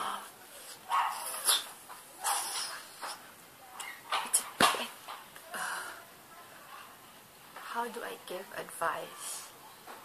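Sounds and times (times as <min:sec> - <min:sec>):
dog barking and yipping: 0:00.8 - 0:01.6.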